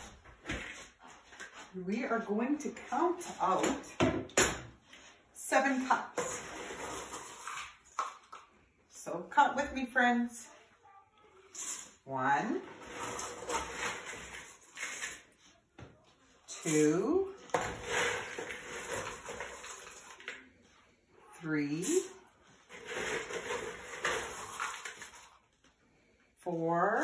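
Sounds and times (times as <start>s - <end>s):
utensils rustling: 6.2s - 8.0s, 11.5s - 12.0s, 12.6s - 15.6s, 16.5s - 20.5s, 21.7s - 25.6s.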